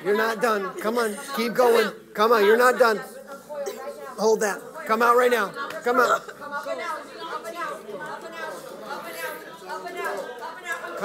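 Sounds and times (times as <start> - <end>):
several voices murmuring: 0.0 - 11.0.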